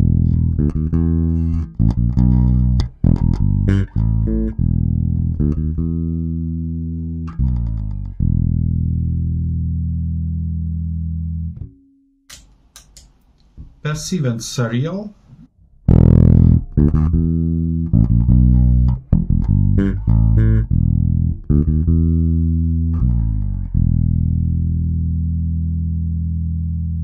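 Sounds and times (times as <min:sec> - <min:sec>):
bass string noises: 0:00.0 - 0:11.8, 0:15.6 - 0:27.0
electric bass plucked notes: 0:00.0 - 0:11.9, 0:15.8 - 0:27.0.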